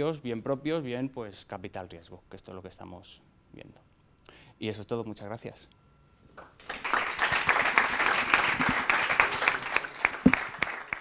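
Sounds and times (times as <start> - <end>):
audience applauding: 6.4 - 11.0.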